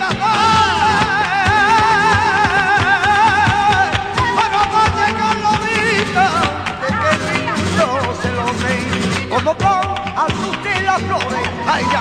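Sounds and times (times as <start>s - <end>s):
flamenco guitar: 0.0s - 12.0s
man singing: 0.0s - 12.0s.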